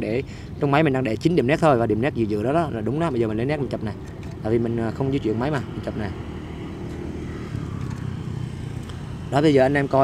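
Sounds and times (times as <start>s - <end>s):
traffic rumble: 0.0s - 10.0s
motorcycle engine running: 4.3s - 10.0s.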